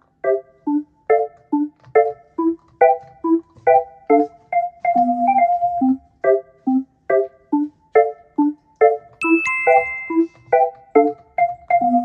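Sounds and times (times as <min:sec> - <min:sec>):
bouncy keyboard music: 0:00.0 - 0:12.0
bright bell-like note: 0:09.2 - 0:10.5.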